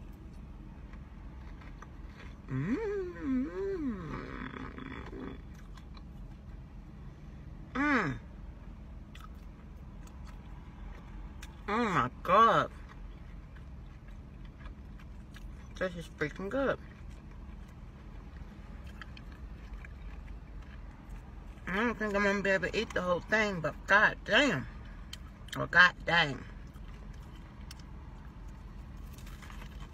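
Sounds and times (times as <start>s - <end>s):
person chewing food: 0.0s - 6.7s, 9.1s - 21.7s, 26.5s - 29.9s
soft clicks of chewing food: 12.7s - 15.8s, 16.8s - 21.6s, 26.6s - 29.9s.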